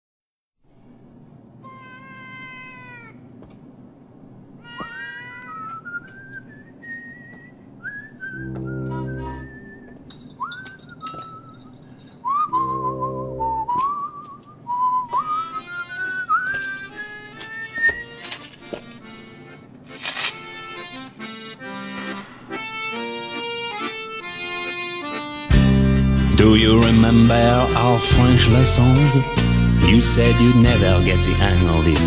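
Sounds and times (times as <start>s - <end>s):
cat-like meows: 1.6s - 3.2s, 4.6s - 5.7s
whistled tune: 5.6s - 18.2s
low held chords: 8.2s - 10.1s, 12.5s - 18.3s, 20.8s - 32.0s.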